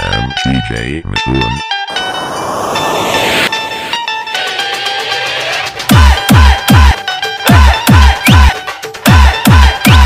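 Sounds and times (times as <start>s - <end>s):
rising noise sweep: 1.9s - 4.2s.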